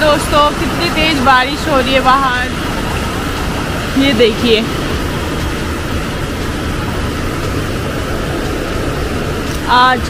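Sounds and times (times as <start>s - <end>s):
heavy rain falling: 0.0s - 10.0s
low rumble: 0.0s - 10.0s.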